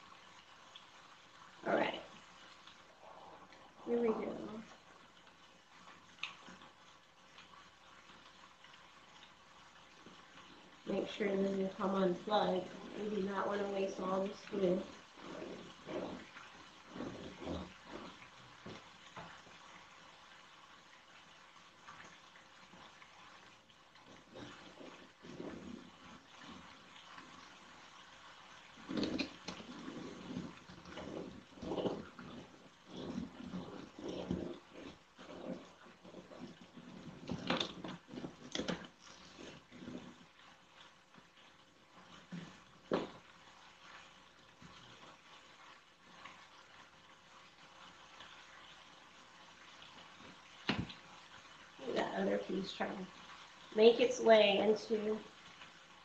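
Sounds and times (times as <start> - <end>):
hands rubbing cardboard: 14.6 - 19.4, 28.8 - 40.4.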